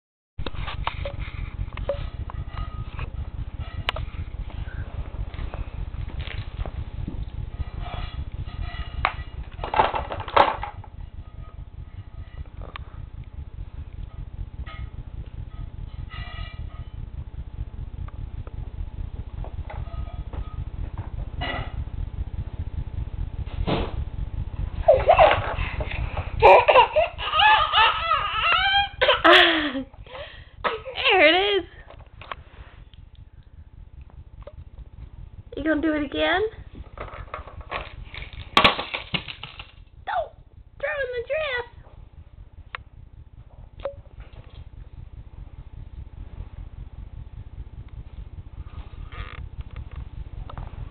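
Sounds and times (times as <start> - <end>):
steady low rumble: 0.4 - 50.9
plastic toys clicking and knocking: 9.6 - 10.7
baby laughing and squealing: 26.4 - 29.3.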